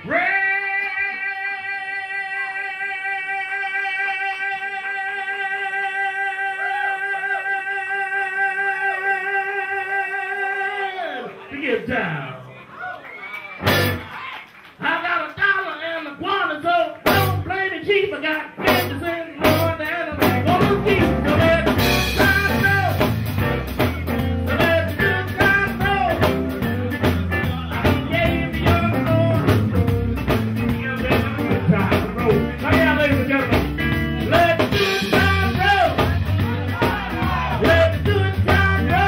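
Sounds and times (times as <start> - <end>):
drums: 13.5 - 14.8, 16.9 - 39.0
electric guitar lead with bent notes: 13.6 - 14.0, 18.6 - 39.0
bass: 13.6 - 14.2, 16.2 - 39.0.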